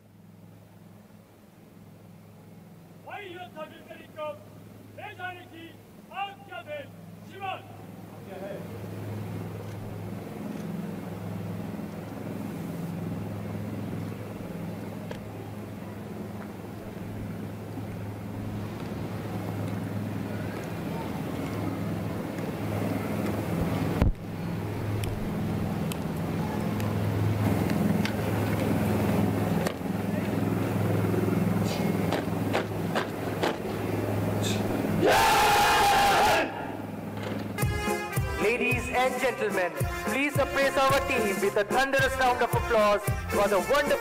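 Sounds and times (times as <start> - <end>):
person shouting drill command: 3.0 - 4.4, 5.0 - 7.8
crowd noise: 19.3 - 35.2.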